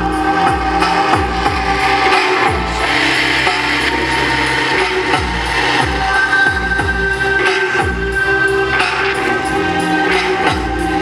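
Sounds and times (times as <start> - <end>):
electronic downtempo music: 0.0 - 11.0
gritty noisy swell: 0.0 - 11.0.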